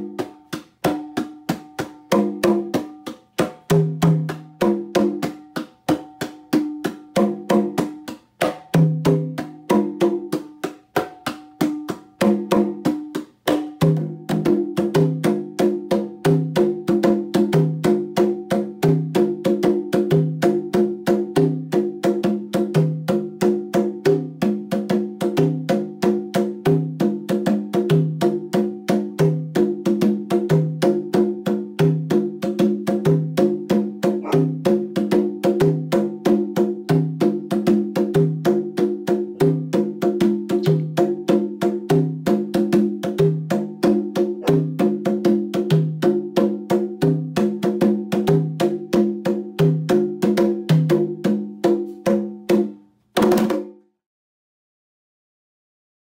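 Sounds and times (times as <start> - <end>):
congas played with hands: 0.0 - 54.0.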